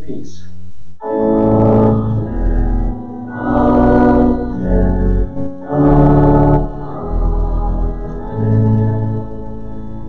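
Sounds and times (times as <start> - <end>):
church organ: 1.0 - 10.0
congregation singing: 1.0 - 10.0.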